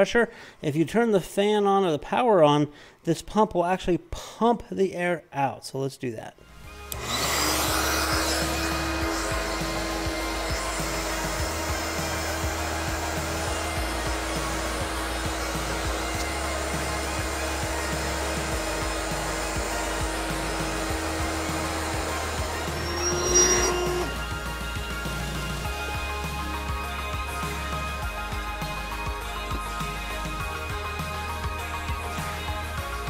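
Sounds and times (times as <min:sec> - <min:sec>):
background music: 0:06.2 - 0:33.0
electric air pump humming: 0:06.6 - 0:32.5.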